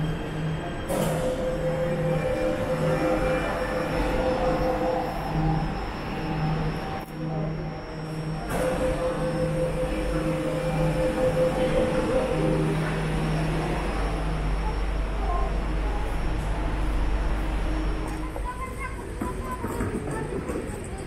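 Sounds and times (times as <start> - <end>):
train electric whine: 0.0 - 21.0
train low rumble: 0.0 - 21.0.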